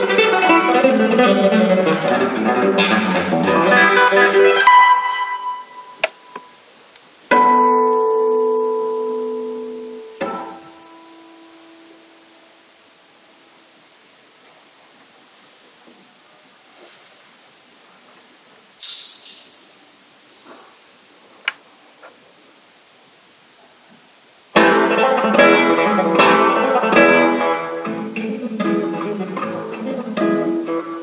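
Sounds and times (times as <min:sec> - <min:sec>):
classical guitar playing: 0:00.0 - 0:06.6, 0:07.3 - 0:12.8, 0:24.5 - 0:31.0.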